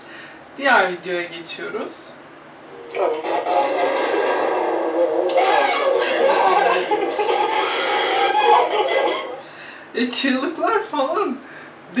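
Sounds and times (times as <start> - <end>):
music: 2.7 - 9.4
people screaming and shouting: 2.9 - 9.4.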